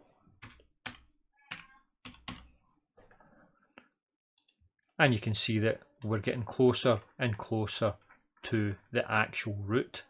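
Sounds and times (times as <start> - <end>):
computer mouse and keyboard clicks: 6.6 - 8.9.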